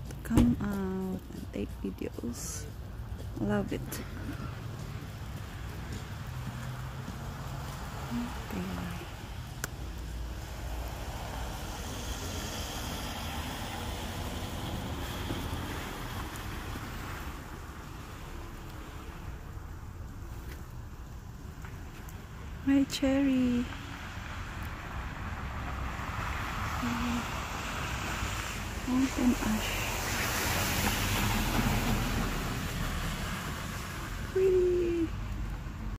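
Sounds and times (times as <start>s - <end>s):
rushing outdoor background noise: 0.0s - 35.9s.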